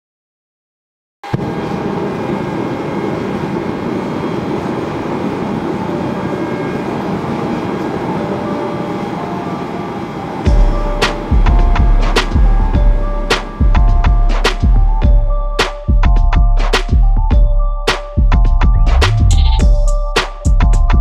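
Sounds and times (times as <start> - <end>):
music with heavy bass beat: 10.5 - 21.0.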